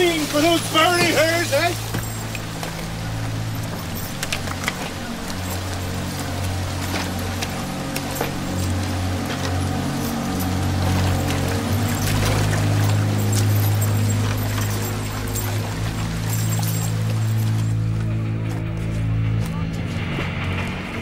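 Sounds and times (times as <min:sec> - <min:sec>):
pouring water: 0:00.0 - 0:17.8
low sustained film music: 0:00.0 - 0:21.0.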